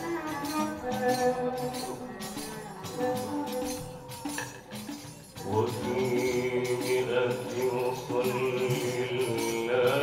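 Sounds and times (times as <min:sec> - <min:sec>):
men chanting in unison: 0:05.4 - 0:10.0.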